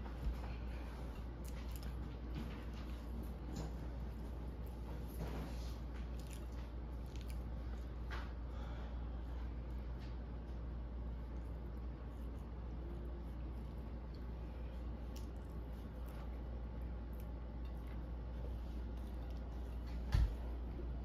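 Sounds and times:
steady low hum: 0.0 - 21.0
person chewing wetly: 1.1 - 2.0, 5.8 - 8.1, 11.2 - 20.0.

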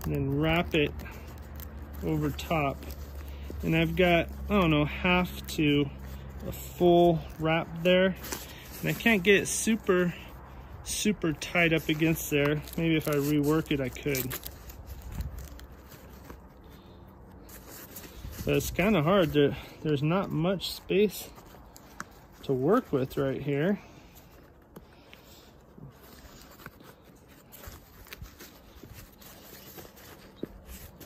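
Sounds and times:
fabric bag rustling: 0.0 - 31.0.

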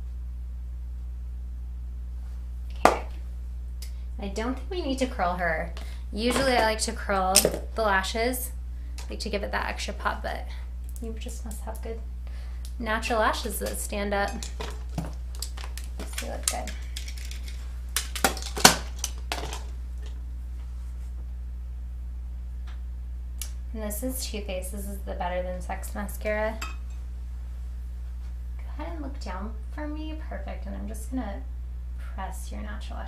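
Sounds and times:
steady low hum: 0.0 - 33.0.

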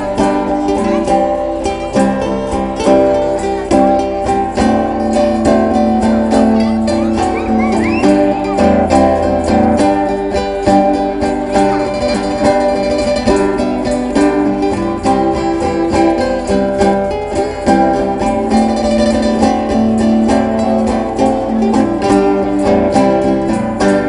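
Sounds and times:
acoustic guitars strumming: 0.0 - 24.0
electric guitar: 0.0 - 24.0.

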